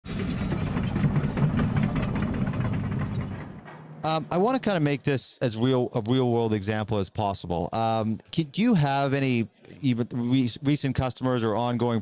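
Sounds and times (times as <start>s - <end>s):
engine pulsing rumble: 0.1s - 4.7s.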